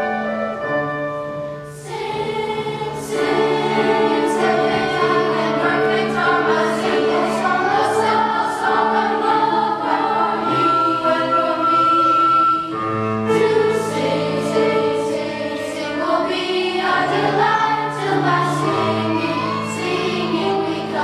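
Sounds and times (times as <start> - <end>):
children's choir singing: 0.0 - 21.0.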